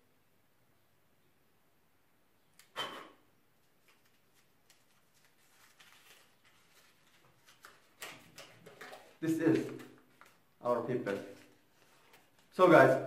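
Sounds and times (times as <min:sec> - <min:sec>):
paper rustling and crinkling: 0:03.6 - 0:12.9.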